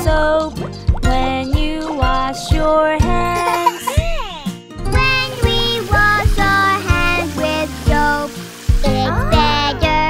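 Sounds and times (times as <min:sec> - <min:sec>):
children's song music: 0:00.0 - 0:10.0.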